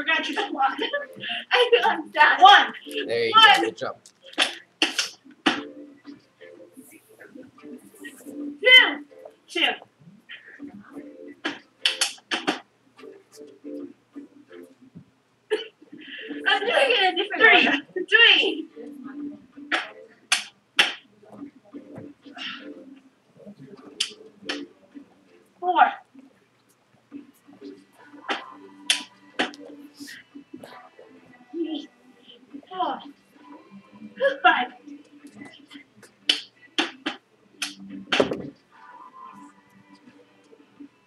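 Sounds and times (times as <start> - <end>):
faint voices: 21.0 - 26.5, 27.1 - 41.0.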